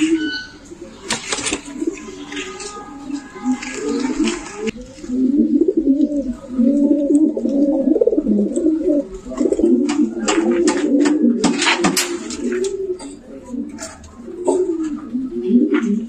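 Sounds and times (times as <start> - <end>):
pigeons cooing: 0.0 - 16.0.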